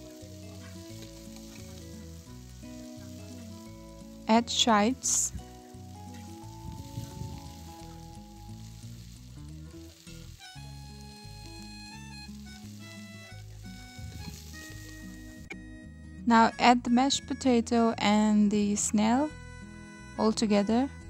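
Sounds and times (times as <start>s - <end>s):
chives sizzling in hot oil: 0.0s - 15.5s
background music: 0.0s - 21.0s.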